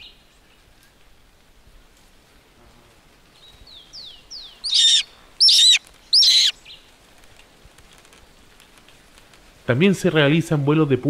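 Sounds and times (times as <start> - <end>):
bird of prey calling: 4.0 - 6.7.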